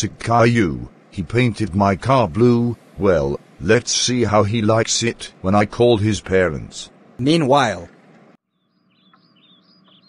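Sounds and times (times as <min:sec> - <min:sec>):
low steady hum: 0:00.0 - 0:08.4
high bird chirps: 0:08.4 - 0:10.0.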